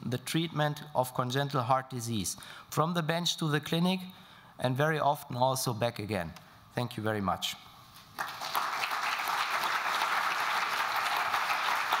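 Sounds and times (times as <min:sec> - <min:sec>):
large audience applauding: 0:08.2 - 0:12.0.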